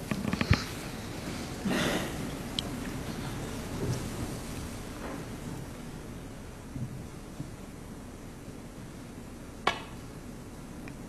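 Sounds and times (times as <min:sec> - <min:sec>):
cue striking ball click: 0:09.6 - 0:10.0.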